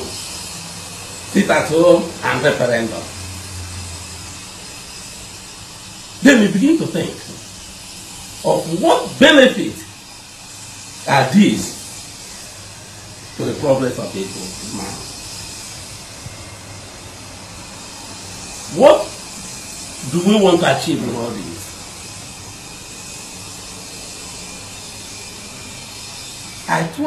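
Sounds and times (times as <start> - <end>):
steady background hiss: 0.0 - 27.0.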